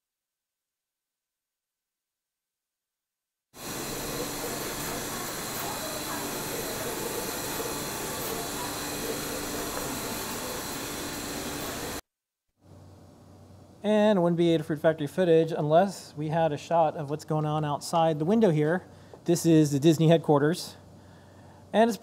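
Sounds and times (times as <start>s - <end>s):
machine hiss with low hum: 3.6s - 12.0s.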